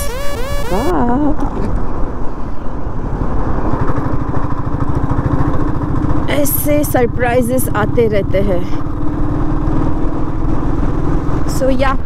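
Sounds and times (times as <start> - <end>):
wind and road noise: 0.0 - 12.0
motorcycle engine running: 3.1 - 12.0.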